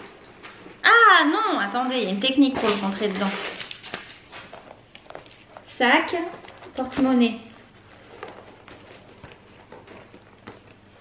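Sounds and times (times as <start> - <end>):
faint rustling: 1.7 - 11.0.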